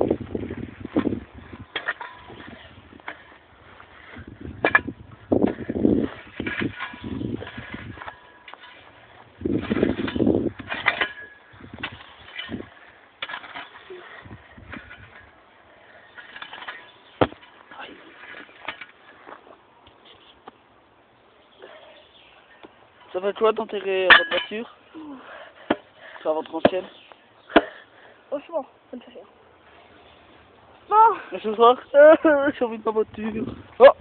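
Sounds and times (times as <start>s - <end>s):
shovel digging stony soil: 0.5s - 15.4s.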